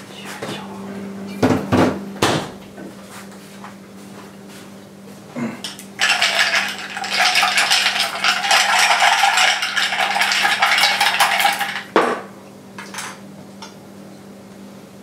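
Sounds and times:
ice cubes clinking in a glass: 6.0s - 12.0s.

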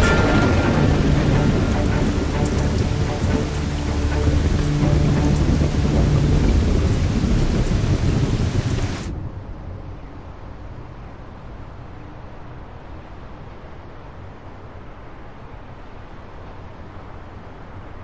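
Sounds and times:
deep rumbling thunder: 0.0s - 10.4s
heavy rain falling on the sea: 0.0s - 18.0s.

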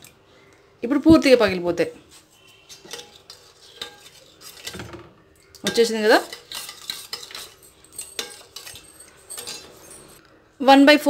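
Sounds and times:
spoon scraping and clinking in bowl: 2.4s - 10.2s.

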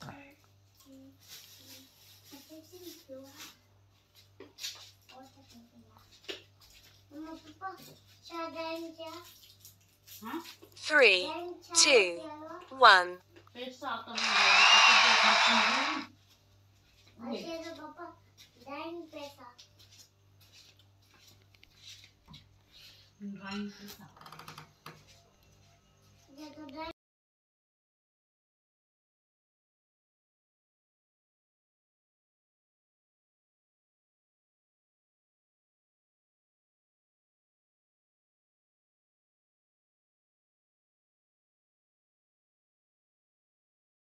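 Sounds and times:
short voice-like sound: 10.8s - 12.2s, 12.8s - 13.2s.

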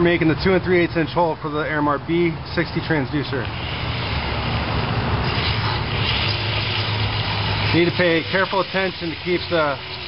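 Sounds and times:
hole saw rasping fiberglass: 3.5s - 10.0s.

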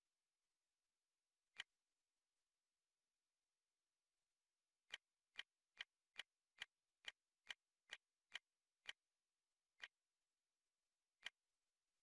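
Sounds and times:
quiet sharp clicks: 1.5s - 1.8s, 4.8s - 10.1s, 11.1s - 12.0s.

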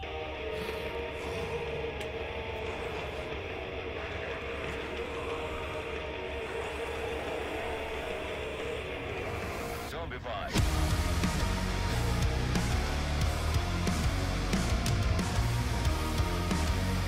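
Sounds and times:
held droning chord: 0.0s - 17.0s.

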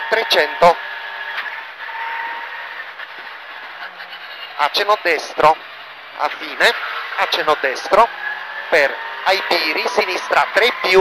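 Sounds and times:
car engine at speed: 0.0s - 11.0s
tyre and road noise: 0.0s - 11.0s.

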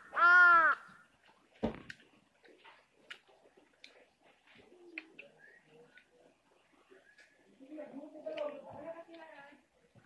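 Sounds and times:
chewing clicks: 1.9s - 4.1s, 4.9s - 6.3s.

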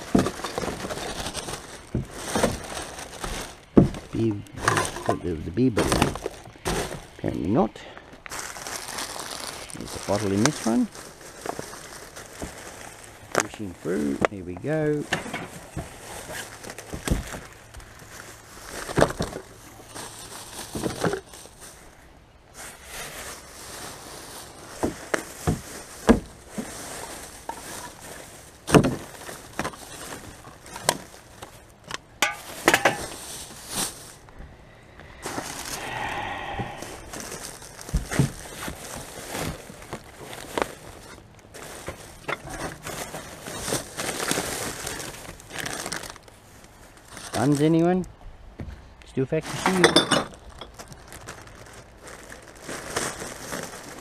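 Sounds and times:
knocks and clatters in bin: 0.0s - 7.1s, 24.8s - 26.7s, 28.7s - 29.8s
plastic bags crinkling: 0.0s - 48.0s, 49.3s - 54.0s.

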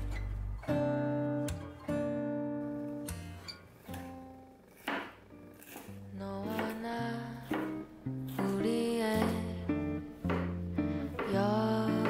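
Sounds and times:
soft guitar music: 0.0s - 12.0s
knife cutting on wooden board: 3.8s - 6.8s, 7.4s - 8.6s.

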